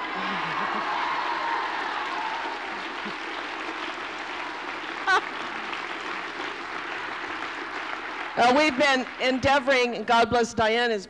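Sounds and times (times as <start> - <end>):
person cheering: 0.0 - 3.2, 5.1 - 5.4
audience applauding: 0.0 - 9.9.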